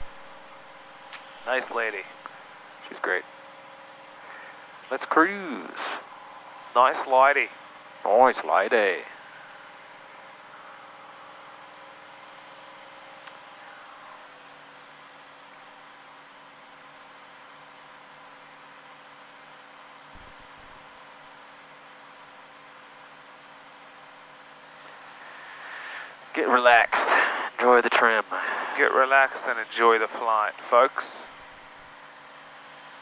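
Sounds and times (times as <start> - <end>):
airplane cabin engine drone: 4.2 - 16.4.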